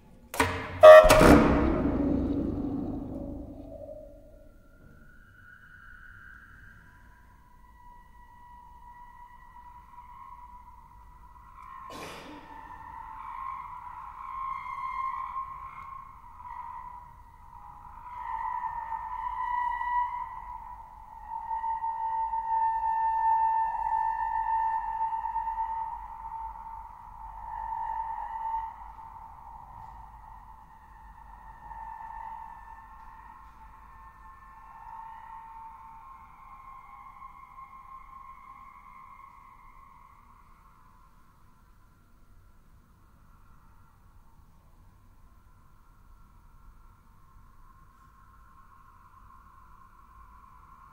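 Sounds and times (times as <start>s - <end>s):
chamber ensemble sustained high tones: 0.8s - 10.8s.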